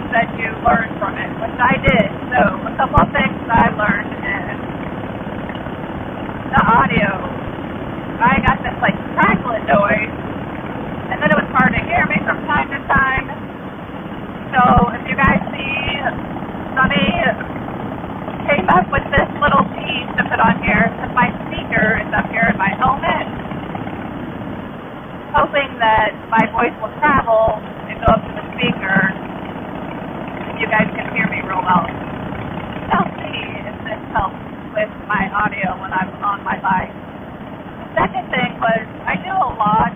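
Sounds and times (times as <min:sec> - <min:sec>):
woman talking muffled: 0:00.0 - 0:04.6, 0:06.5 - 0:07.4, 0:08.2 - 0:10.1, 0:11.1 - 0:13.4, 0:14.6 - 0:16.2, 0:16.8 - 0:17.4, 0:18.5 - 0:23.3, 0:25.4 - 0:29.2, 0:30.6 - 0:31.9, 0:32.9 - 0:36.9, 0:38.0 - 0:39.9
motorcycle engine: 0:00.0 - 0:39.9
wind: 0:00.0 - 0:39.9.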